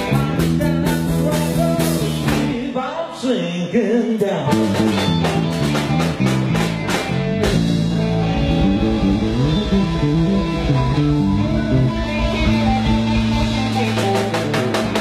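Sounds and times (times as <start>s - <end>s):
drum kit: 0.0s - 2.8s, 4.5s - 15.0s
bass guitar: 0.0s - 2.9s, 3.8s - 15.0s
electric guitars: 0.0s - 15.0s.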